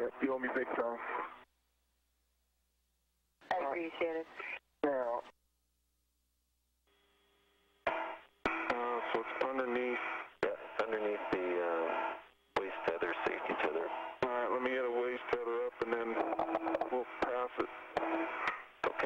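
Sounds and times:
voices over radio: 0:00.0 - 0:01.4, 0:03.5 - 0:05.2, 0:08.7 - 0:19.0.

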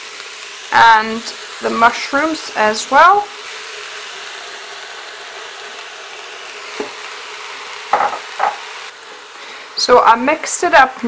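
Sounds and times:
vegetables sizzling in a pot: 0:00.0 - 0:11.0.

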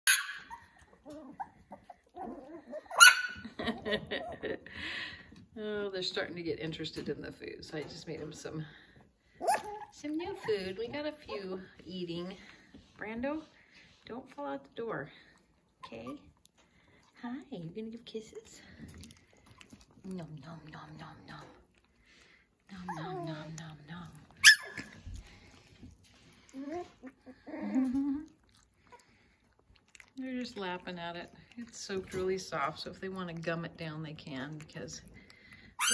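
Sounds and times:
puppy squeaks and whines: 0:00.0 - 0:03.4, 0:09.4 - 0:10.6, 0:24.4 - 0:25.0
puppies yipping: 0:00.0 - 0:03.5, 0:09.4 - 0:10.7, 0:24.4 - 0:25.0
woman laughing: 0:03.4 - 0:05.0.

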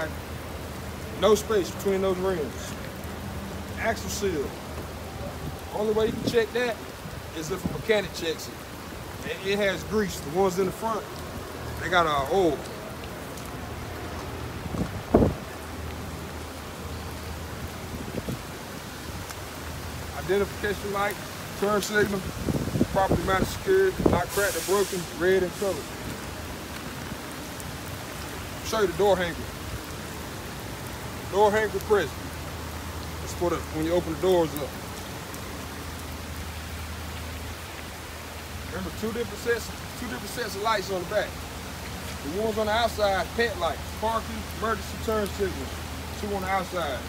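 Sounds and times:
rain hissing: 0:00.0 - 0:47.0.

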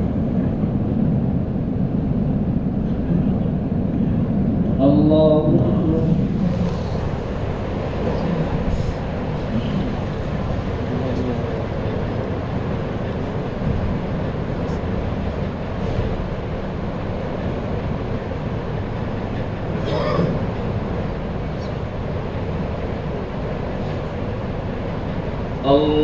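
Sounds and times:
low rumbling background noise: 0:00.0 - 0:26.0.

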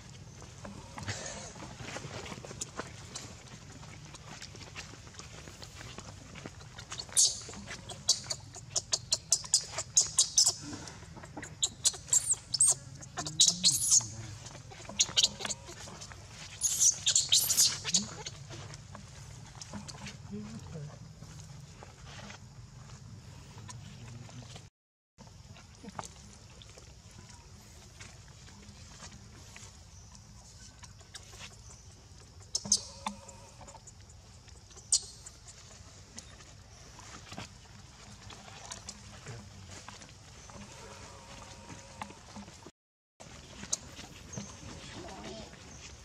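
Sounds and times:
baby macaque screaming: 0:16.6 - 0:18.3.

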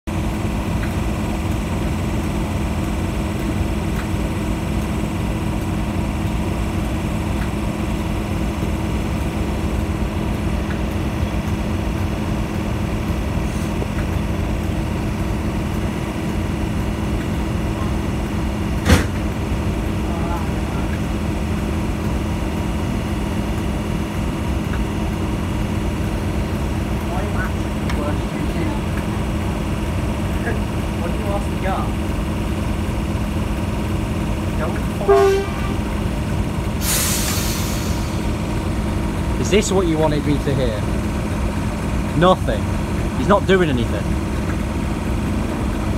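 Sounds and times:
diesel locomotive engine idling: 0:00.1 - 0:45.9.

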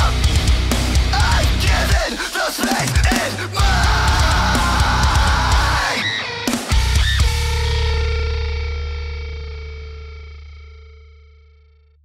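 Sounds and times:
distorted electric guitar chord: 0:00.0 - 0:02.0, 0:03.6 - 0:11.8.

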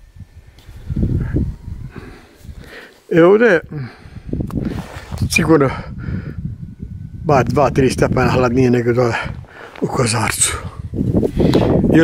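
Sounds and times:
wind buffeting microphone: 0:00.0 - 0:02.8, 0:03.4 - 0:12.0.

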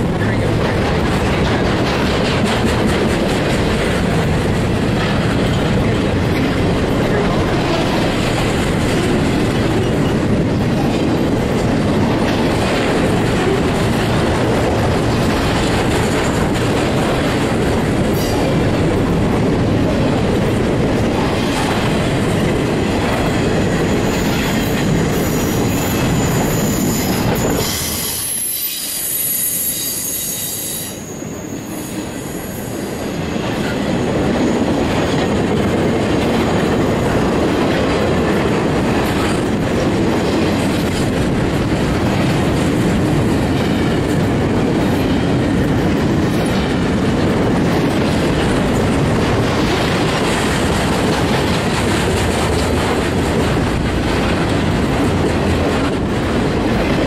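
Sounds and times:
freight train rumble and clatter: 0:00.0 - 0:57.0.

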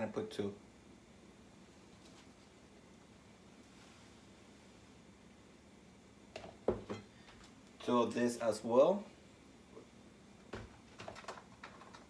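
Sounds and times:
containers knocking on counter: 0:06.4 - 0:07.0.

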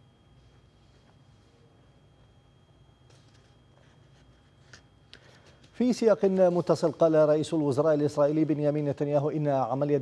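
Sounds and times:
faint low hum: 0:00.0 - 0:10.0
man speaking: 0:05.8 - 0:10.0.

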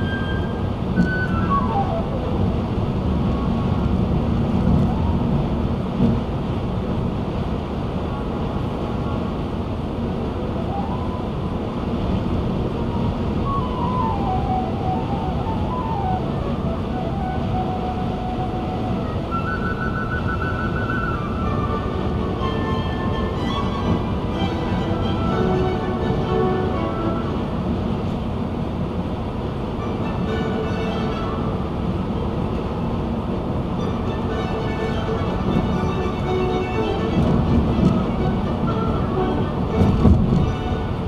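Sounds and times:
slow sparse music: 0:00.0 - 0:05.6, 0:10.5 - 0:28.3, 0:29.6 - 0:41.0
car road and wind noise: 0:00.0 - 0:41.0.

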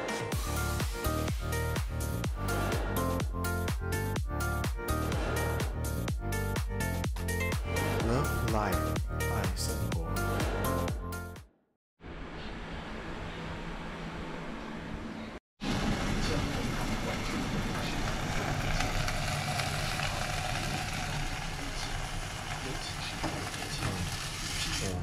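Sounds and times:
ham sizzling in a pan: 0:15.8 - 0:24.8.

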